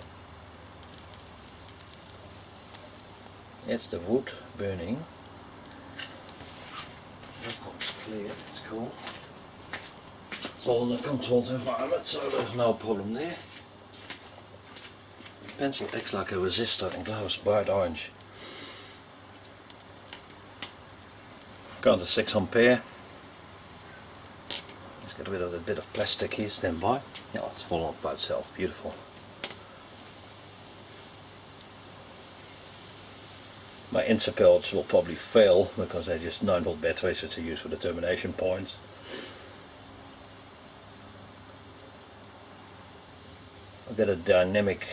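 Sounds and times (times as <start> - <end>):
faint fire crackles: 0.0 - 44.9
faint tick: 0.0 - 44.9
mains hum and hiss: 0.0 - 44.9
sharp click: 29.0 - 29.7.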